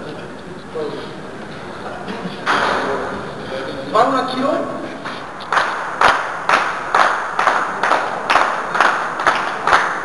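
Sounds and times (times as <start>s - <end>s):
hands clapping with echo: 5.0s - 10.0s.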